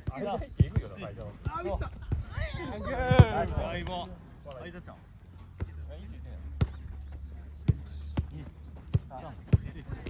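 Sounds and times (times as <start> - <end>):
football kicks on artificial turf: 3.0 - 4.0.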